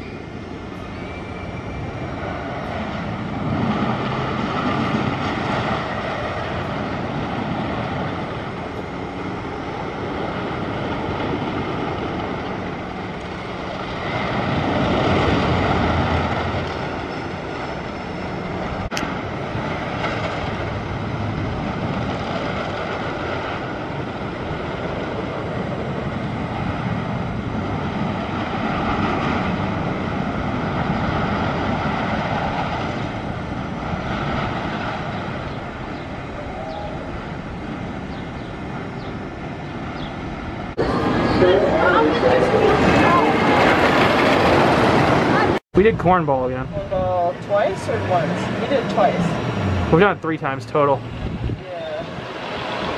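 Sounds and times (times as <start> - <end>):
wooden roller coaster rumbling: 0.0 - 52.9.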